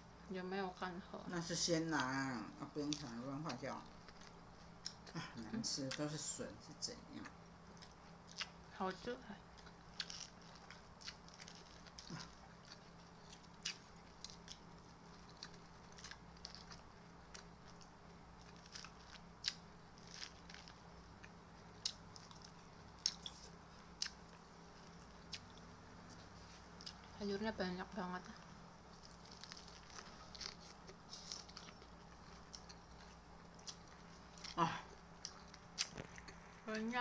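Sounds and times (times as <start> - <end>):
chewing crisp salad: 7.2 - 8.6, 9.5 - 27.1, 28.9 - 36.6.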